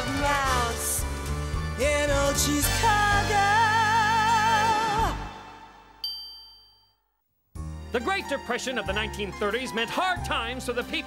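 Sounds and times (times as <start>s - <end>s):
background music: 0.0s - 6.0s, 7.6s - 11.0s
high cartoon chime ding: 6.0s - 7.0s.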